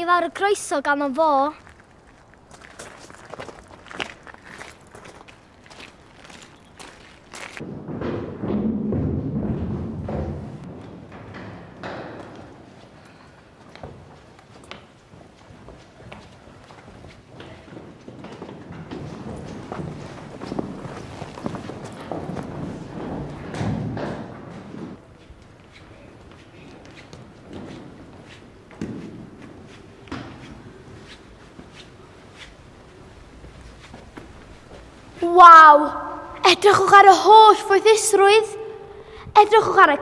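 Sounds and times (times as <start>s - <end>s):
footsteps of people walking: 1.3s - 7.7s, 10.1s - 35.3s
boots hurrying on hard floor: 13.7s - 25.4s.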